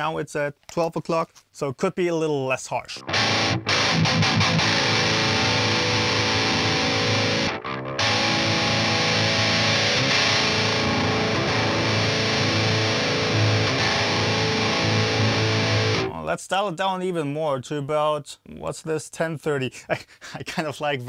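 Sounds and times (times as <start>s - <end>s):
distorted electric guitar riff: 3.0s - 16.2s.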